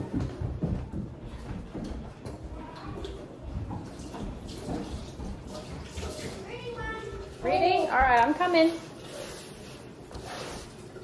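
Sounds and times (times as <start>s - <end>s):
child's voice: 6.3s - 7.5s.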